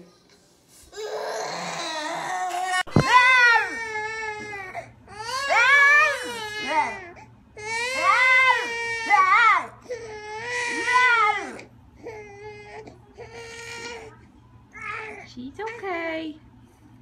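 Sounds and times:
infant crying: 0:00.9 - 0:14.2.

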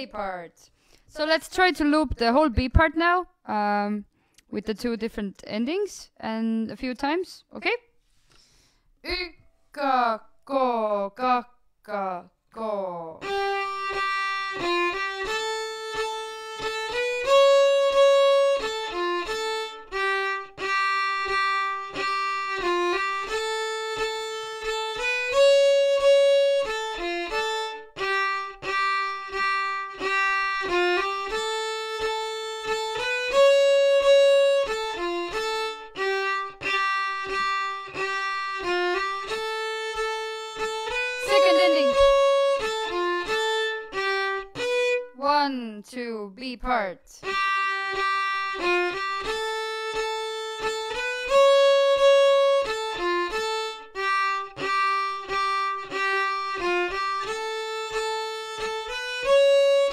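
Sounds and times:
solo violin folk tune: 0:13.1 - 0:45.4, 0:47.2 - 0:59.9.

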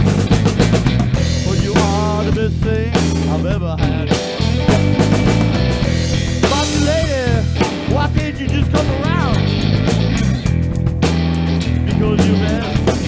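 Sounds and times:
bass line: 0:00.0 - 0:13.0
drum kit beat: 0:00.0 - 0:13.0
electric guitar lead bending notes: 0:00.0 - 0:13.0.

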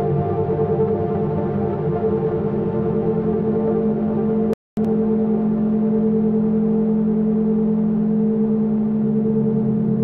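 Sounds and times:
singing bowls and synthesizer drone: 0:00.0 - 0:10.0.

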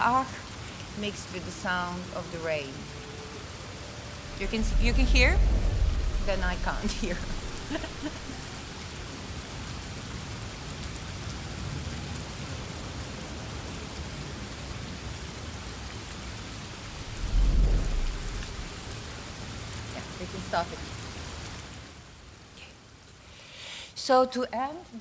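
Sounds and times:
rain over speakers: 0:00.0 - 0:25.0
deep thunder-like rumble: 0:04.0 - 0:09.0, 0:16.6 - 0:19.4.

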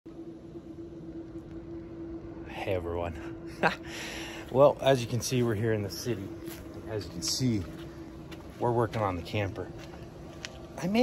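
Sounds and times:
low rumble: 0:00.1 - 0:11.0
steady mid-pitched hum: 0:00.1 - 0:11.0.

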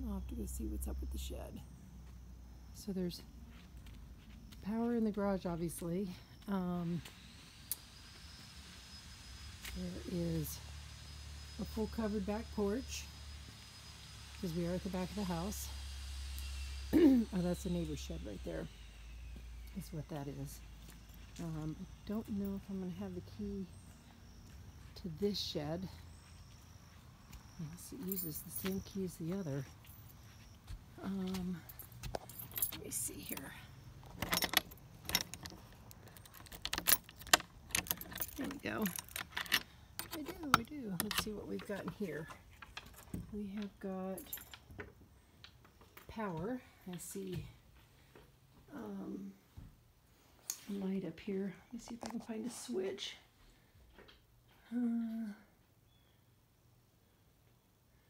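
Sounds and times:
outdoor hiss and rumble: 0:00.0 - 0:58.0
keys jingling: 0:31.7 - 0:40.4.

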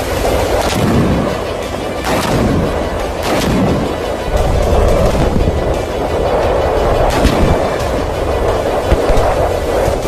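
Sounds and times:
deep explosion rumble: 0:00.0 - 0:10.0
music: 0:00.0 - 0:10.0.

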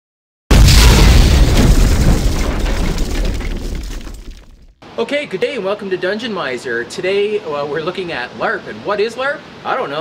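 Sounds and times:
deep explosion boom: 0:00.5 - 0:04.7.

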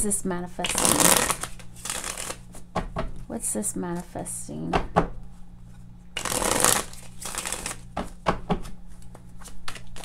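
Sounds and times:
cards being shuffled: 0:00.6 - 0:02.7, 0:05.7 - 0:10.0.

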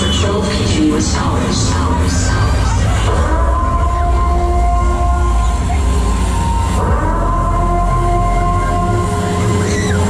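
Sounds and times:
fairground ride mechanical rumble: 0:00.0 - 0:10.0
high squeal: 0:09.4 - 0:10.0.

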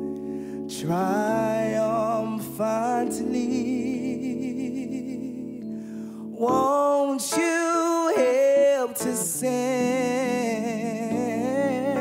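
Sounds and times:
soft instrumental backing: 0:00.0 - 0:12.0
man singing wordless melody: 0:00.4 - 0:12.0.

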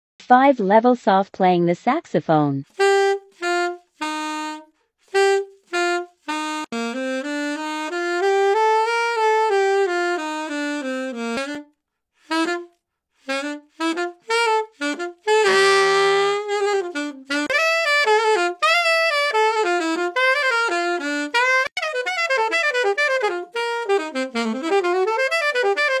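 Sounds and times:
solo alto saxophone: 0:02.7 - 0:26.0.

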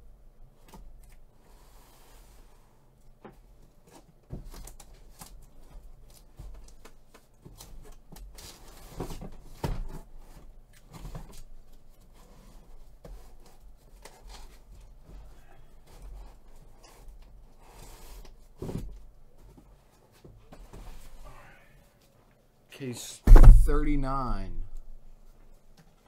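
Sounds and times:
heavy thumps: 0:23.2 - 0:25.0.

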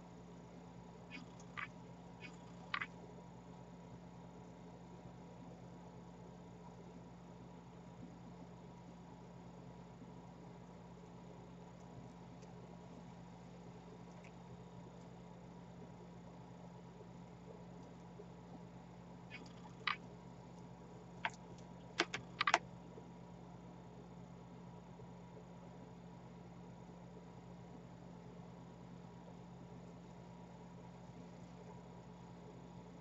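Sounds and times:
quiet steady hum: 0:00.0 - 0:33.0
beads and needle clicking: 0:21.2 - 0:22.6.

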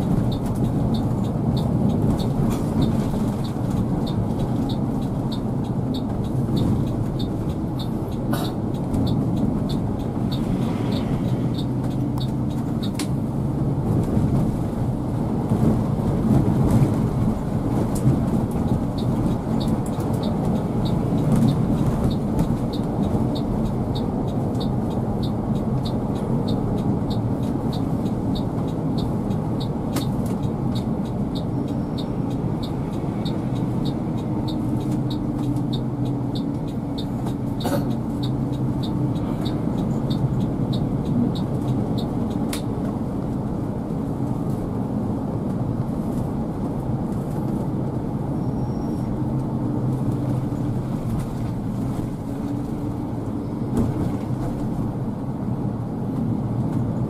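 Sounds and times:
engine and road noise in cabin: 0:00.0 - 0:57.0.

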